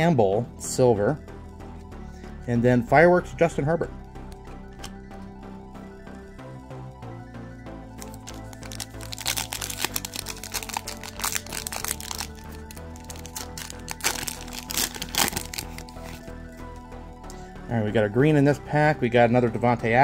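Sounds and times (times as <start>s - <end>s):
background music: 0.0s - 20.0s
foil wrapper crinkling: 8.0s - 16.2s.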